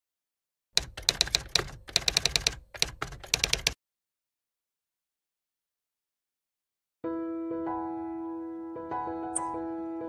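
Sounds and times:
keyboard typing clacks: 0:00.8 - 0:03.8.

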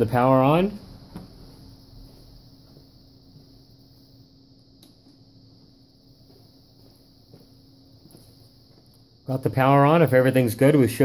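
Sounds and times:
low hum: 0:00.0 - 0:10.7.

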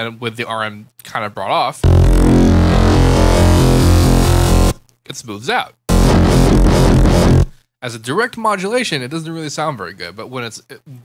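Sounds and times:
low buzzy pulsing bass synth: 0:01.8 - 0:04.8, 0:05.9 - 0:07.6.

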